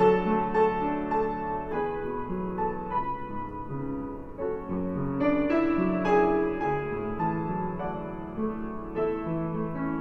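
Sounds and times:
solo piano hymn chords: 0.0 - 10.0.

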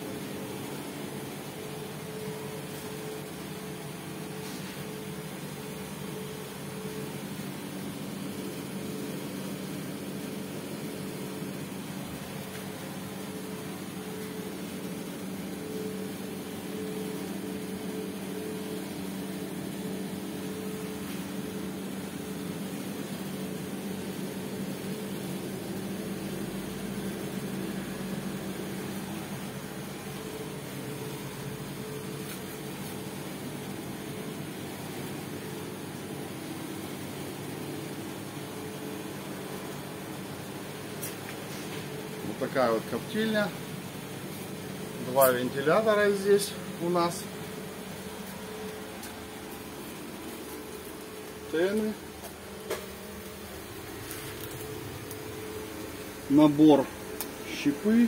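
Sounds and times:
small fans humming: 0.0 - 58.0.

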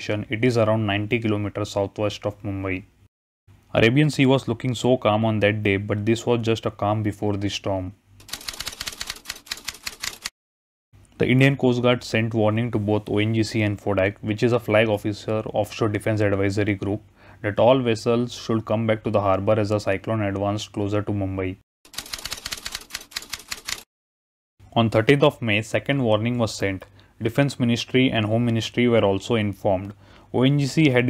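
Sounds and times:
rapid keyboard key clicks: 8.2 - 10.3, 21.9 - 23.8.

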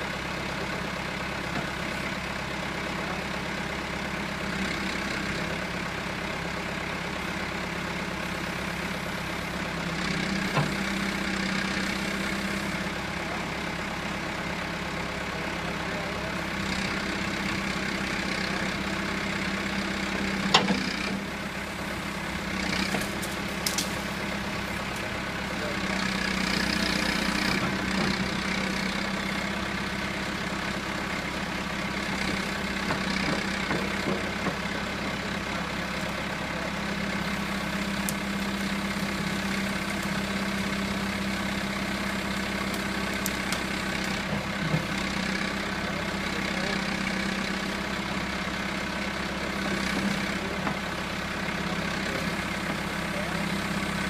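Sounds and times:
diesel engine running: 0.0 - 54.0.

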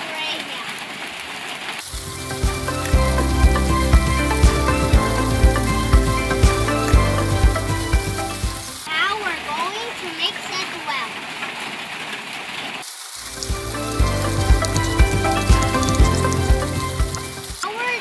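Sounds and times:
music with steady beat: 1.9 - 8.8, 13.3 - 17.6.

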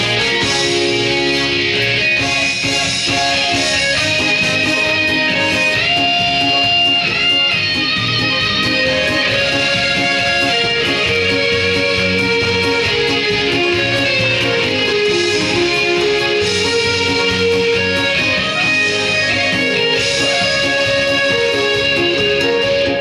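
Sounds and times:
guitar: 0.0 - 23.0
instrumental backing track: 0.0 - 23.0.

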